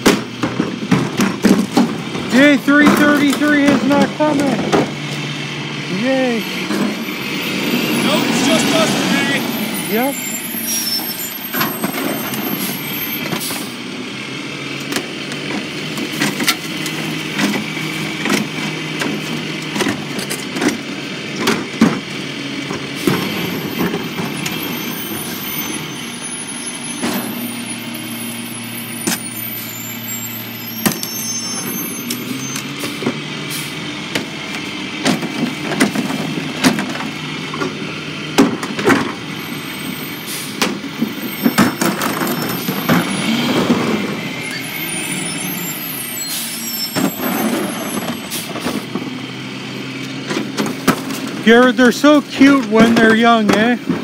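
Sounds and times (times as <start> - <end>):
bins banging and knocking: 0.0 - 5.3, 6.0 - 10.3, 11.4 - 13.7, 14.8 - 25.8, 26.9 - 45.2, 46.4 - 49.2, 49.9 - 54.0
diesel truck engine running: 0.0 - 54.0.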